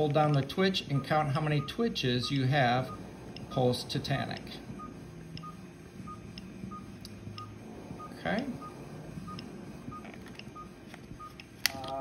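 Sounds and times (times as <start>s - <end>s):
faint electronic beeps: 0.8s - 3.6s, 4.8s - 11.5s.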